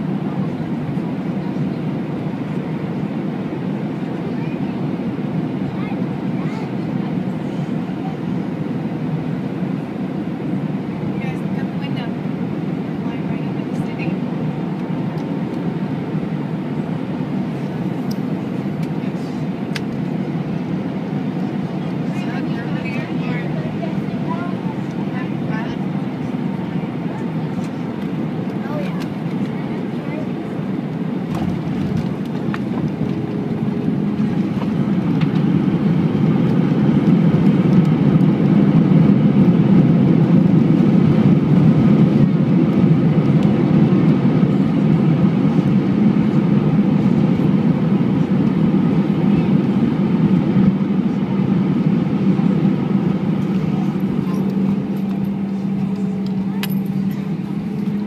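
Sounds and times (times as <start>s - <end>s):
jet engines roaring: 0.0s - 58.0s.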